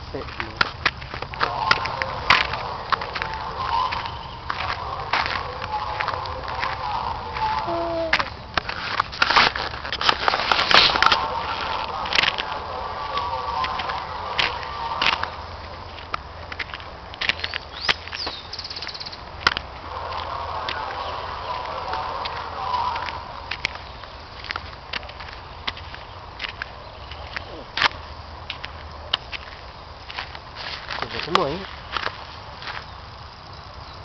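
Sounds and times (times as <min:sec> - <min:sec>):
footsteps snapping twigs and leaves: 0:00.2 - 0:32.9.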